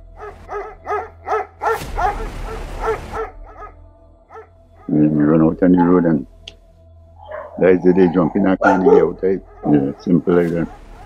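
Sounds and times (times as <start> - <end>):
dog barking: 0.1 - 6.1, 7.2 - 11.0.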